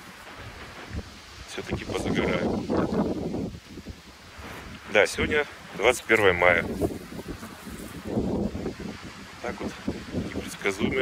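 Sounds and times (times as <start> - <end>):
gusty wind on microphone: 0.0 - 11.0.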